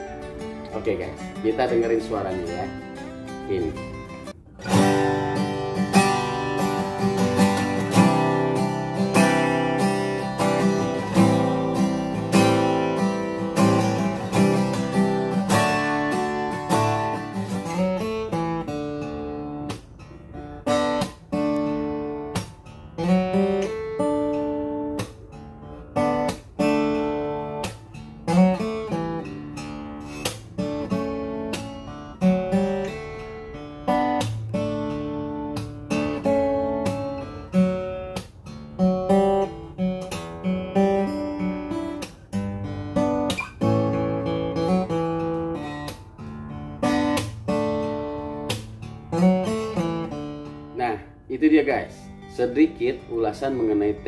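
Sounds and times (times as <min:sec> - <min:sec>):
acoustic guitar playing: 0:00.0 - 0:54.0.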